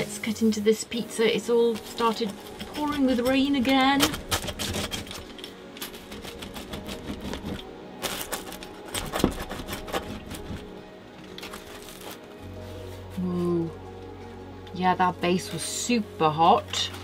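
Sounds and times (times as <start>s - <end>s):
soft background music: 0.0s - 17.0s
pizza cutter crunching crust: 1.5s - 12.3s.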